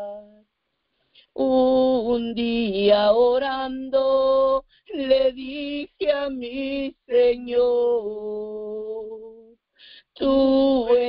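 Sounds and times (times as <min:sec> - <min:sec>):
woman singing unaccompanied: 0:00.0 - 0:00.4, 0:01.2 - 0:11.0.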